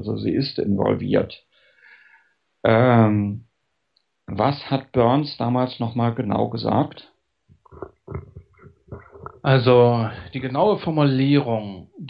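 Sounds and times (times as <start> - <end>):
person mumbling: 0.0 - 1.3, 2.7 - 3.4, 4.3 - 7.0, 7.8 - 12.0
people talking: 0.0 - 1.4, 2.7 - 3.4, 4.3 - 7.0, 7.7 - 12.0.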